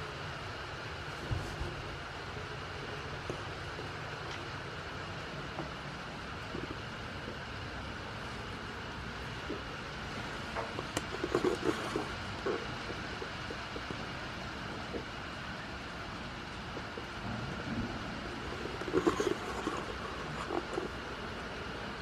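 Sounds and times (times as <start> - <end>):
light rain hissing: 0.0 - 22.0.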